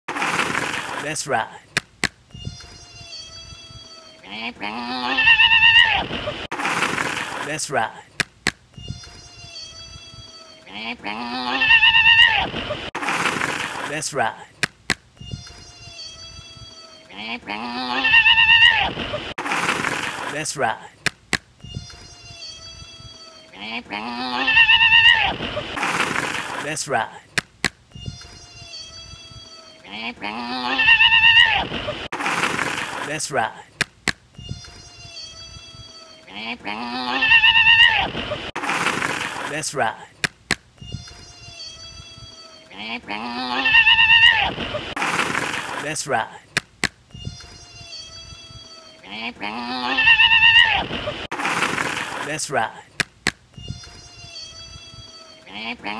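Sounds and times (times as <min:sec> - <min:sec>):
wavering bleat-like cry: 0:02.4 - 0:06.4, 0:08.8 - 0:12.6, 0:15.3 - 0:19.1, 0:21.7 - 0:25.8, 0:28.0 - 0:32.0, 0:34.4 - 0:38.5, 0:40.9 - 0:45.0, 0:47.2 - 0:51.3, 0:53.6 - 0:55.9.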